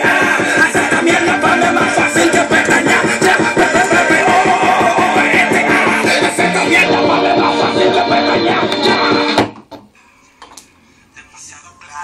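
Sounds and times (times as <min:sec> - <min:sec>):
music with vocals from tin-can speaker: 0:00.0 - 0:12.0.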